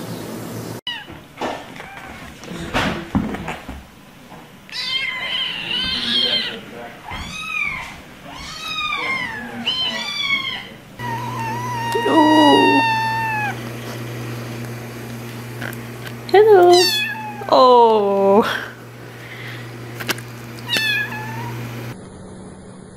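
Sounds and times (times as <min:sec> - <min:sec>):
kittens mewing: 0:04.7 - 0:14.9, 0:16.4 - 0:18.7, 0:20.5 - 0:22.0.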